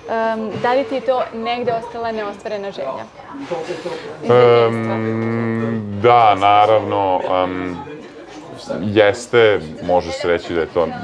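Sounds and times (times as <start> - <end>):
man's deep voice holding low tone: 4.4 - 7.8.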